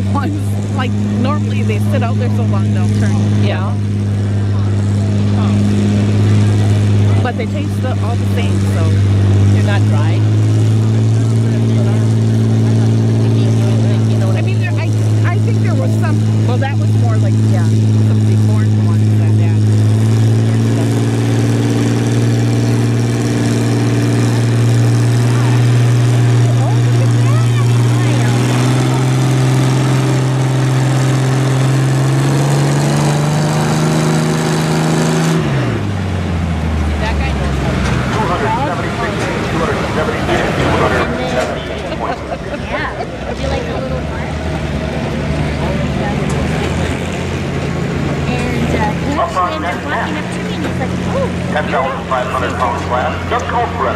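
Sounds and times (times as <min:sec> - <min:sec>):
tractor engine at full throttle: 0:00.0 - 0:53.9.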